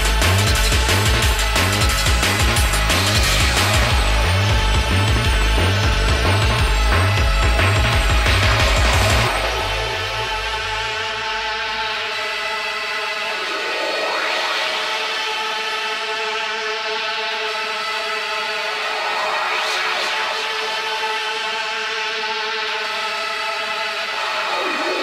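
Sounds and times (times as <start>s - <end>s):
low bass: 0.0s - 12.0s
synth pad chord with sweep: 0.0s - 25.0s.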